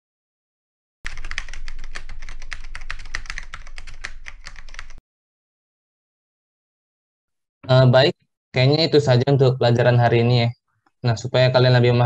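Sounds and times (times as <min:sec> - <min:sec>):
rapid typing on keyboard: 0:01.1 - 0:05.0.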